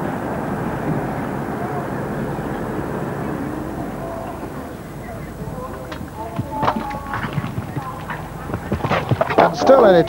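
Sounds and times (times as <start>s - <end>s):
spectators' voices: 0.0s - 10.0s
horse hoofbeats on turf: 5.4s - 10.0s.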